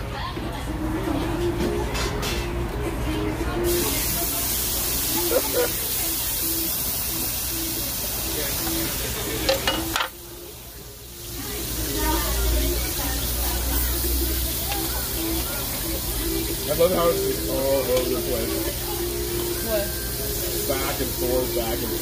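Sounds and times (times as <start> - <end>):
meat sizzling on a grill: 3.6 - 22.0.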